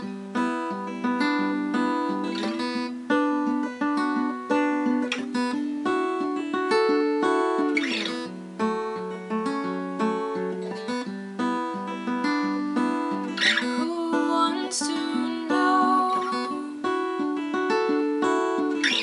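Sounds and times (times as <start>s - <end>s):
fingerpicked acoustic guitar: 0.0s - 19.0s.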